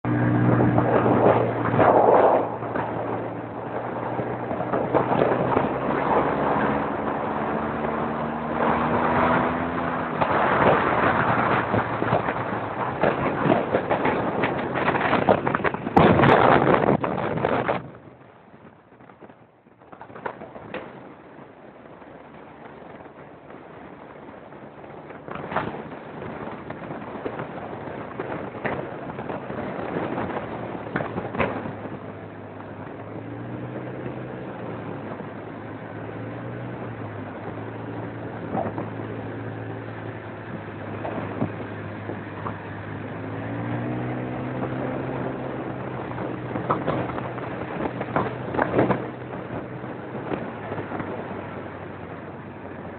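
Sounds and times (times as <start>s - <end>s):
motorcycle engine: 0.0s - 52.9s
wind rushing past microphone: 0.0s - 52.9s.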